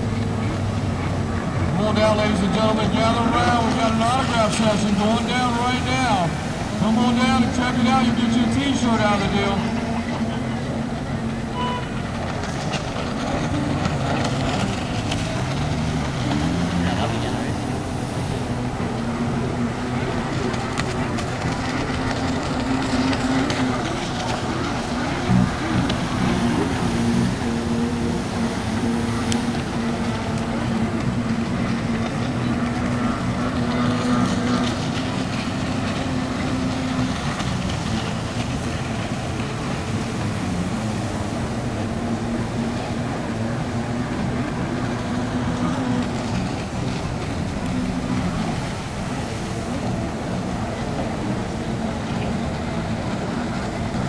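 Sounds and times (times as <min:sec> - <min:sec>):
jet ski engines droning: 0:00.0 - 0:54.0.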